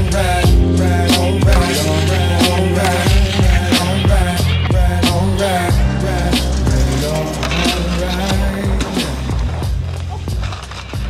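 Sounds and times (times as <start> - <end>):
hip-hop backing track: 0.0 - 11.0.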